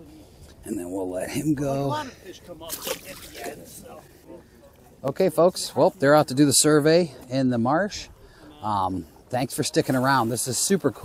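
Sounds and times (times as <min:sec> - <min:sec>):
faint voices: 0:00.0 - 0:11.0
water splashing: 0:02.6 - 0:03.8.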